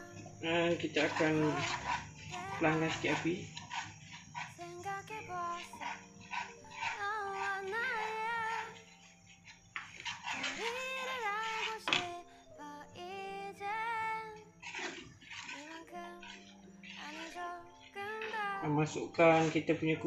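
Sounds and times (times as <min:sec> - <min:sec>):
high wavering sung melody: 0:00.0 - 0:20.0.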